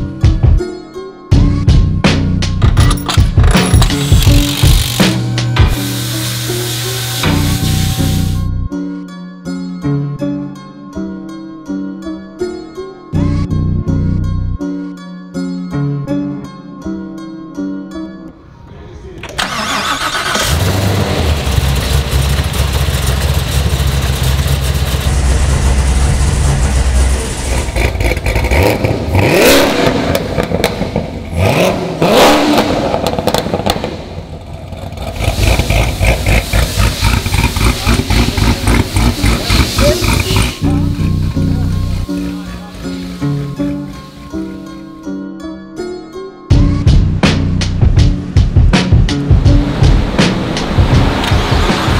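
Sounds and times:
car engine starting and idling: 19.2 - 44.3
engine revving: 19.4 - 44.0, 49.4 - 51.9
plucked-string music: 38.1 - 51.9.

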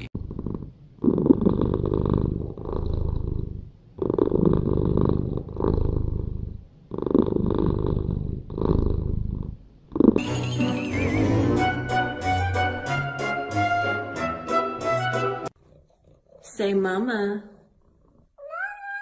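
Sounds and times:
cat purring: 0.0 - 10.2, 15.5 - 19.0.

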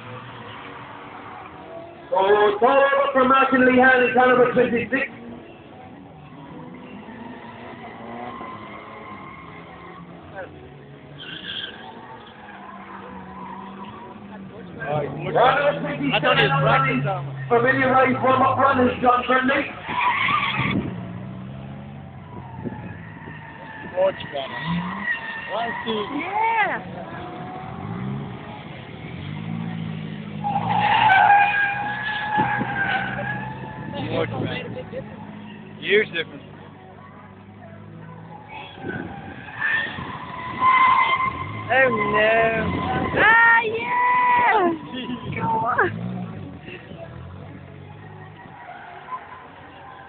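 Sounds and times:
car engine revving: 0.0 - 50.0
tyres skidding: 0.0 - 50.0.

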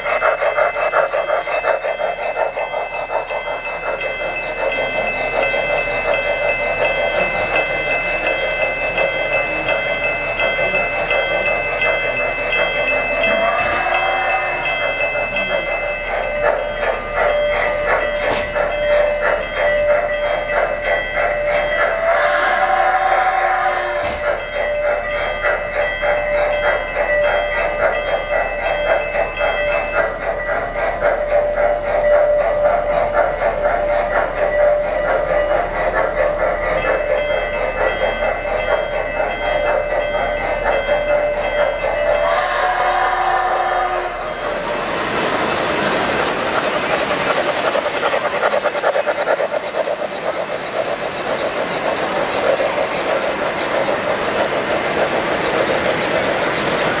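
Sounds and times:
model steam locomotive chuffing: 0.0 - 57.0
track rumble: 0.0 - 57.0
train whistle: 13.1 - 15.5, 21.8 - 24.2, 42.1 - 44.4.

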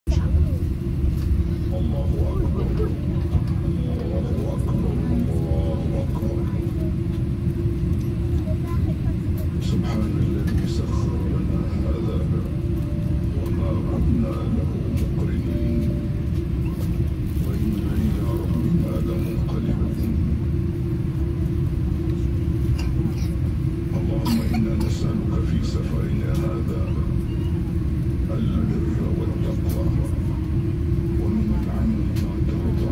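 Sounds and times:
airliner cabin rumble: 0.0 - 32.9
constant low hum: 0.1 - 32.9
faint voices: 0.1 - 32.9.

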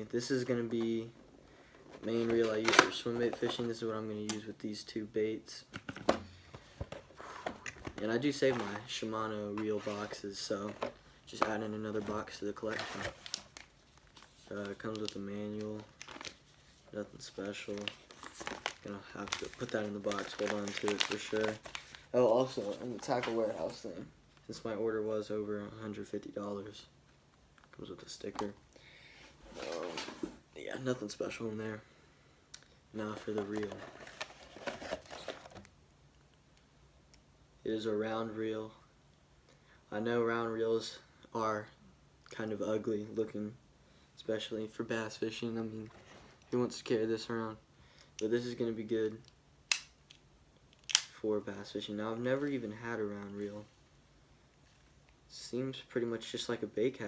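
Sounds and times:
packaging rustling and crinkling: 5.9 - 23.9, 33.1 - 35.7.

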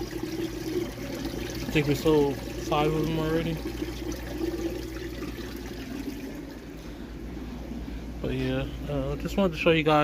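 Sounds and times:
water trickling: 0.0 - 6.8
low steady hum: 0.0 - 10.0.

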